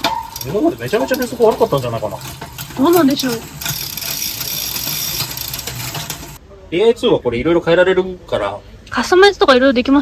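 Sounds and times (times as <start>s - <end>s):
bicycle chain whirring: 0.0s - 6.4s.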